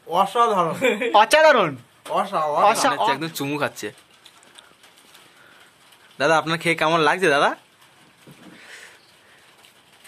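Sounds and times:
soft clicks and rustle: 3.2 - 10.0.

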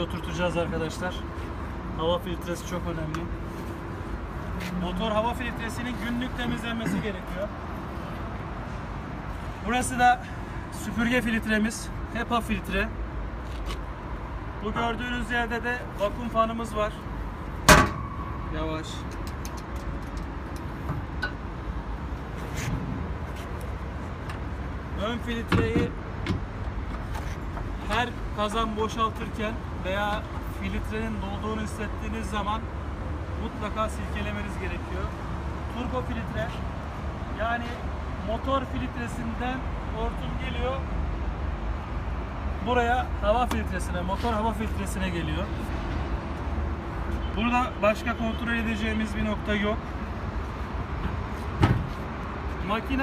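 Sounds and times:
engine cover shutting thud: 17.6 - 18.2.

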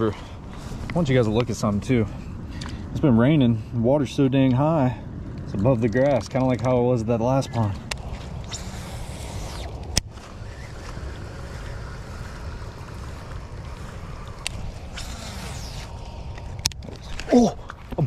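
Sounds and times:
wind rumbling on microphone: 0.0 - 18.0.

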